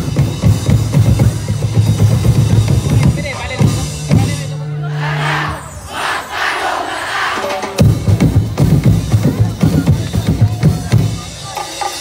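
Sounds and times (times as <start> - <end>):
group shouting war cry: 4.8 - 7.6.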